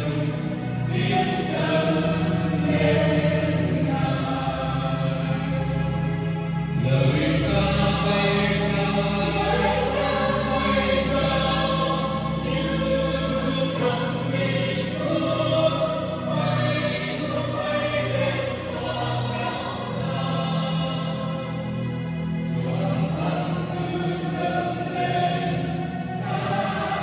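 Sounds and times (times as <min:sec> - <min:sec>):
choir singing a hymn: 0:00.0 - 0:27.0.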